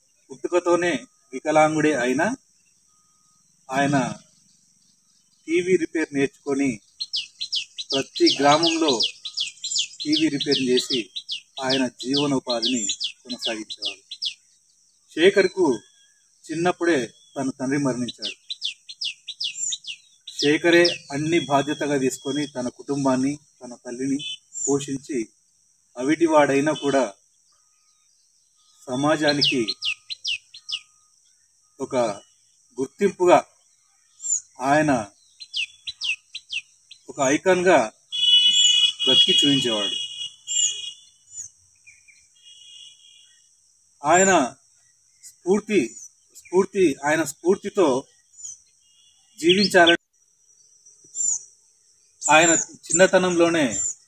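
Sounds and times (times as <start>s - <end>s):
insects hissing: 0.0s - 54.0s
small bird chirping: 0.0s - 54.0s.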